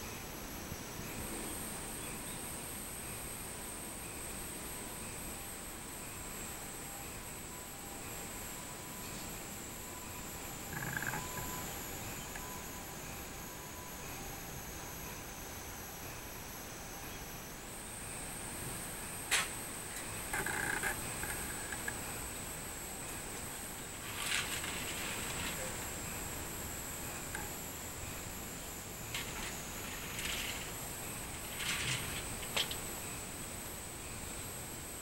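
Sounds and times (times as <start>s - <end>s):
cicadas singing: 0.0s - 35.0s.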